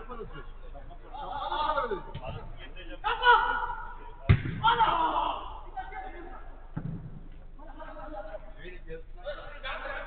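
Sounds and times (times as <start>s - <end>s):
footballers shouting: 3.0s - 6.7s
football being kicked thud: 4.3s - 4.7s, 6.8s - 7.2s.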